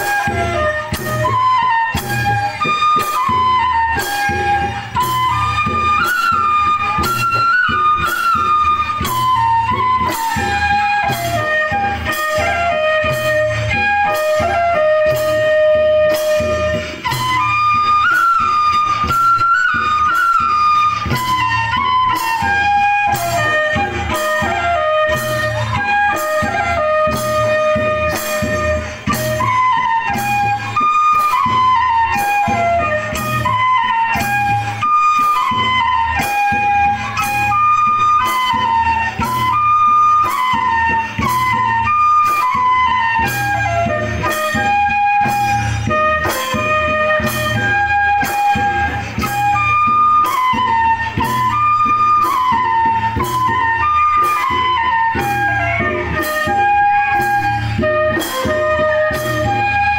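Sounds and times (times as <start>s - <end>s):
flute melody: 0.0s - 59.9s
steady drum beat: 0.0s - 59.9s.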